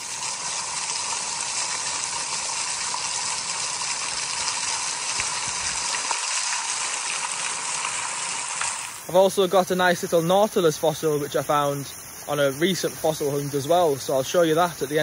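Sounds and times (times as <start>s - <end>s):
waterfall splashing onto rocks: 0.0s - 15.0s.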